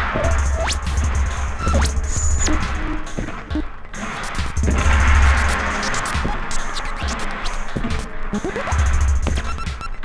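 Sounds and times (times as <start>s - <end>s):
experimental electronic music: 0.0s - 10.0s.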